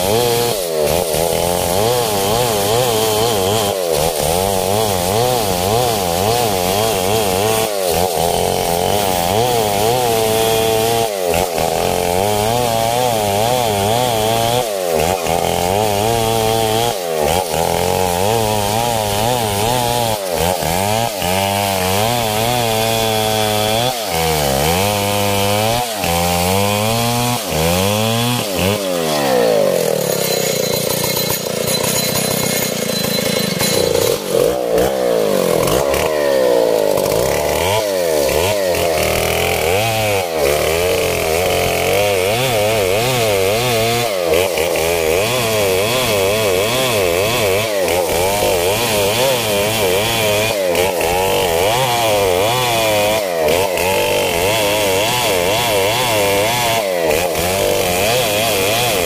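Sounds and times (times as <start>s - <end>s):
chainsaw cutting wood: 0.0s - 59.0s.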